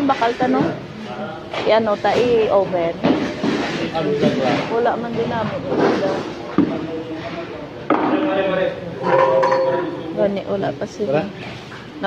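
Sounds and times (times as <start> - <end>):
people talking: 0.0 - 3.2, 3.8 - 11.4.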